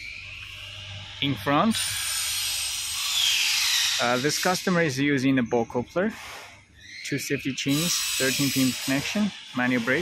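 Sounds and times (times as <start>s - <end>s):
high-pitched hiss: 7.6s - 10.0s.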